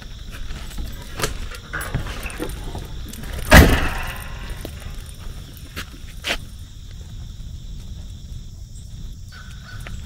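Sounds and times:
footsteps crunching on gravel: 0.0 - 10.0
loud brief thump: 3.5 - 4.4.

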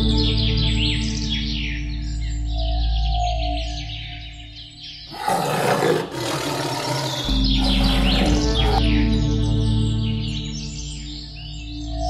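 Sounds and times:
background music: 0.0 - 4.4, 5.1 - 12.0
birds chirping: 0.0 - 9.1
tiger roar: 5.1 - 8.8.

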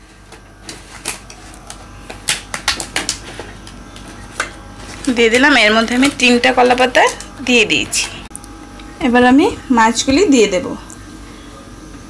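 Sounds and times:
banana leaves crackling in metal pot: 0.0 - 8.2.

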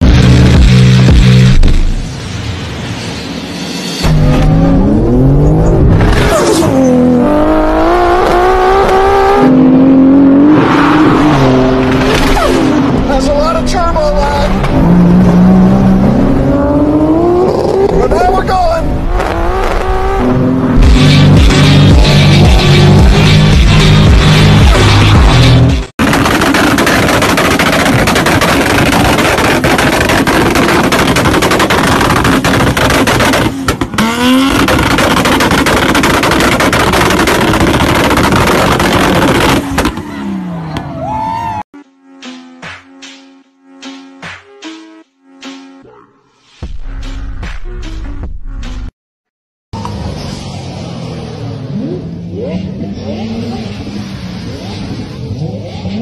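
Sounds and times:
car engine revving hard: 4.1 - 13.0, 14.6 - 18.0, 19.0 - 40.0
exhaust crackling pops: 26.0 - 40.0.

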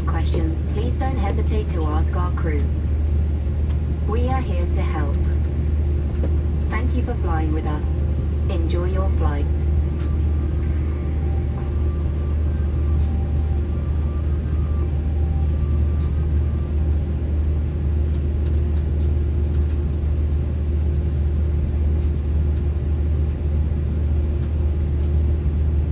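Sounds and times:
airplane cabin drone: 0.0 - 25.9
steady hum: 0.0 - 25.9.

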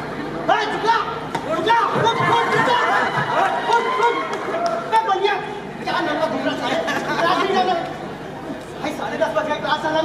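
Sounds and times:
actors speaking in large hall: 0.0 - 10.0.

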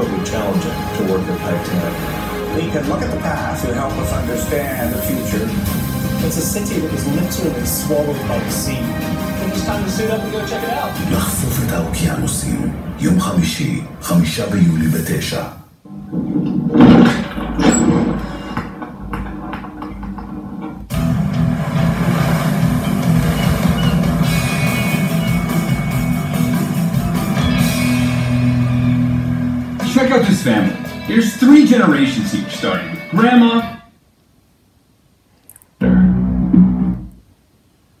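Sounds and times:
rock music from television: 0.0 - 14.0, 16.1 - 33.9, 35.8 - 37.1.

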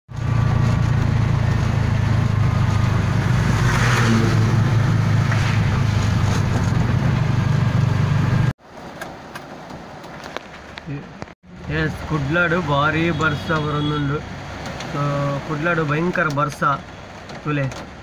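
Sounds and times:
vehicle engine drone: 0.1 - 8.6
tyres on wet road: 0.1 - 18.0.

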